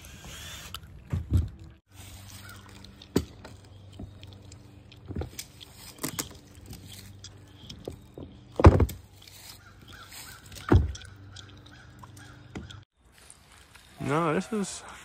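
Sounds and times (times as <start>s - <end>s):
wooden knocks and clunks: 7.7s - 9.0s, 10.6s - 11.1s.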